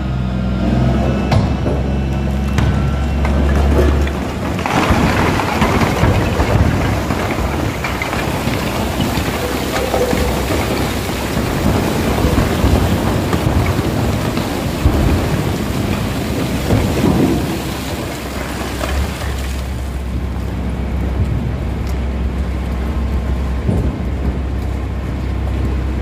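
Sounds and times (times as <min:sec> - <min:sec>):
rock lumps knocking: 0:01.3 - 0:20.2
rock pouring into hopper: 0:03.2 - 0:20.4.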